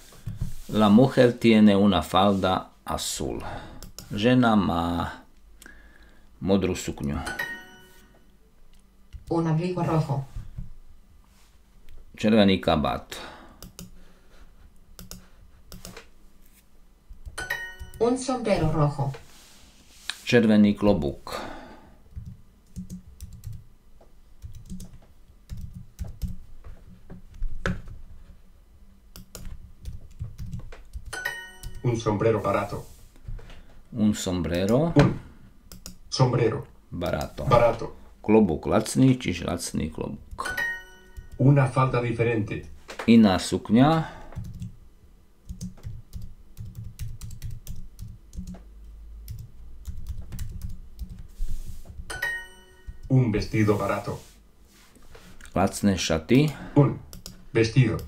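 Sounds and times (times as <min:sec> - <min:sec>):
typing on computer keyboard: 0:13.6 - 0:13.9, 0:15.0 - 0:16.0, 0:22.2 - 0:23.6, 0:24.4 - 0:26.4, 0:29.2 - 0:31.8, 0:44.4 - 0:44.7, 0:45.5 - 0:48.6, 0:49.3 - 0:51.2.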